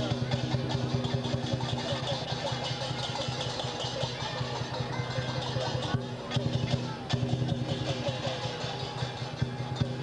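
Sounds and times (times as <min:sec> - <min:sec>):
rapid drum beats: 0:00.0 - 0:10.0.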